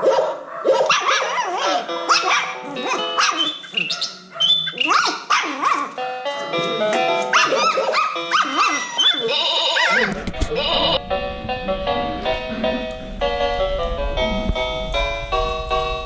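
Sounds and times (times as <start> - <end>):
puppies barking: 0.0 - 6.0, 7.0 - 11.0
low rumble: 10.2 - 16.0.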